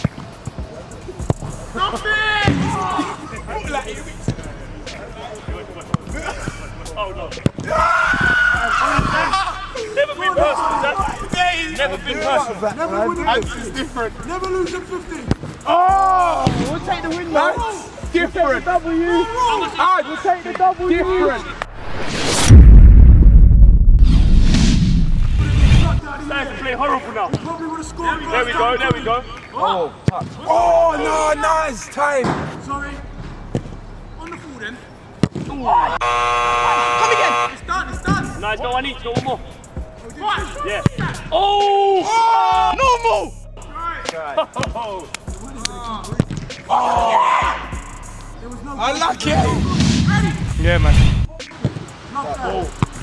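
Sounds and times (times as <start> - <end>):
men calling: 0.0 - 21.6, 26.0 - 50.4, 51.3 - 53.0
person shouting: 41.3 - 43.3, 46.7 - 47.8
football kicked on artificial turf: 46.1 - 46.5.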